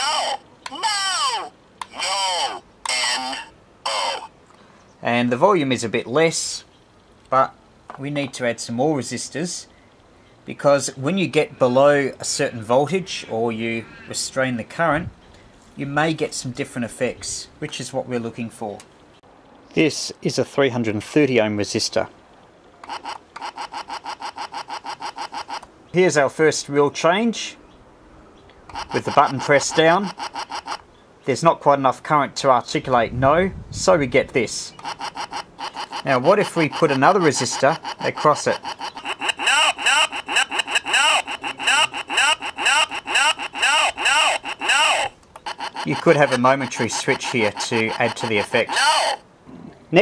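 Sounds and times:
toy speaker stuttering buzz: 0:00.0 - 0:04.3, 0:22.8 - 0:25.7, 0:28.7 - 0:30.8, 0:34.8 - 0:49.2.

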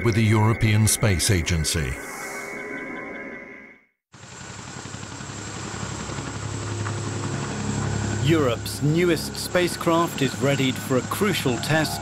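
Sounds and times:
helicopter flying: 0:04.1 - 0:12.0.

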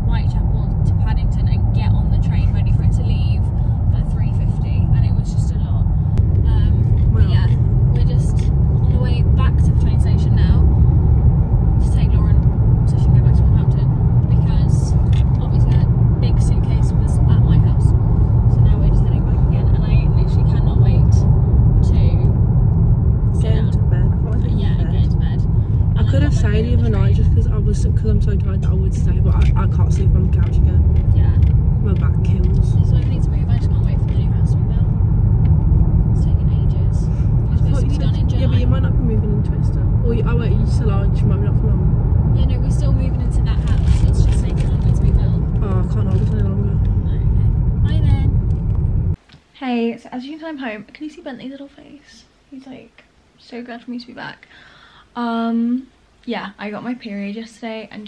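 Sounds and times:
voices talking: 0:00.0 - 0:10.7, 0:11.8 - 0:22.4, 0:23.3 - 0:35.0, 0:36.1 - 0:48.4
car road and engine rumble: 0:00.0 - 0:49.3.

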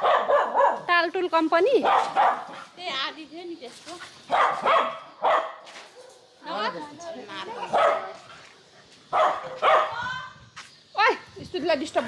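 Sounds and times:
dog barking: 0:00.0 - 0:00.9, 0:01.8 - 0:02.7, 0:04.3 - 0:06.3, 0:07.7 - 0:08.2, 0:09.1 - 0:10.0.

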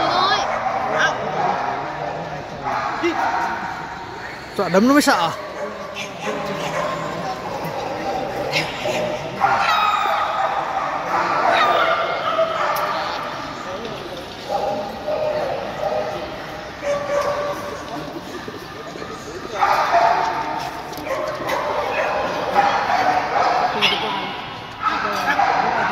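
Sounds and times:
background talk: 0:00.0 - 0:25.9.

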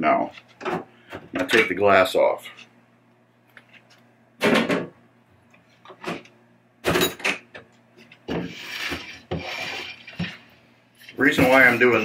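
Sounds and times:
glass sliding with rubbing scrape: 0:08.3 - 0:12.0.

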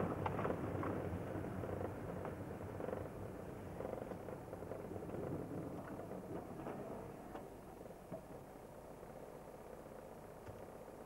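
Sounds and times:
car engine and tyres rumbling: 0:00.0 - 0:11.0
faint clicks: 0:10.4 - 0:10.7.

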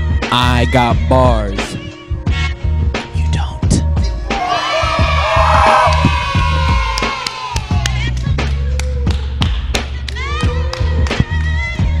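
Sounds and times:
hip-hop beat with heavy bass: 0:00.0 - 0:12.0.

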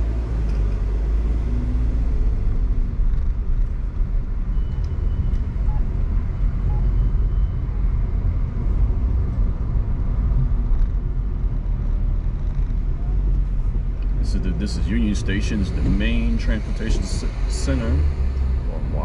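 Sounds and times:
car engine and road noise: 0:00.0 - 0:19.0.

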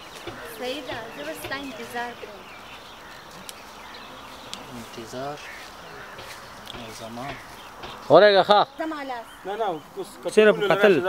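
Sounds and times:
outdoor hiss: 0:00.0 - 0:11.0.

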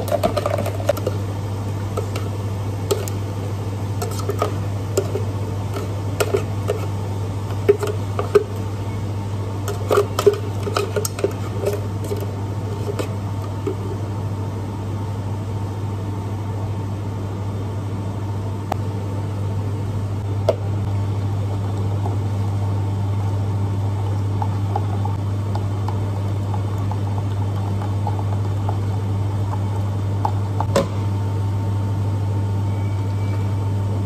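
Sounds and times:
spoon stirring in plastic jug: 0:00.0 - 0:01.2, 0:01.9 - 0:03.3, 0:04.0 - 0:08.7, 0:09.6 - 0:14.0, 0:24.0 - 0:30.7
low hum of cafe equipment: 0:00.0 - 0:34.0
utensils and cups clicking: 0:09.7 - 0:13.1.

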